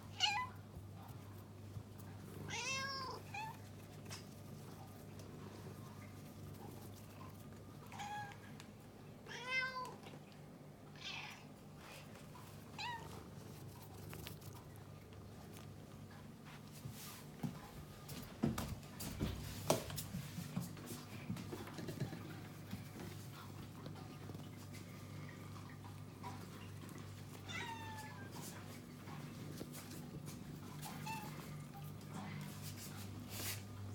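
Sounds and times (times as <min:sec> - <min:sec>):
cat meowing: 0:27.5 - 0:28.3.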